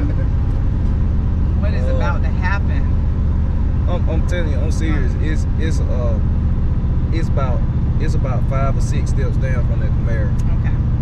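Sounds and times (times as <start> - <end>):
car engine droning inside cabin: 0.0 - 11.0.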